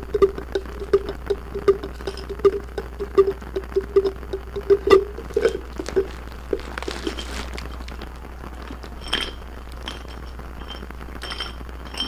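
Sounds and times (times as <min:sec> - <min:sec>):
glass jar tapping: 0:00.9 - 0:06.1.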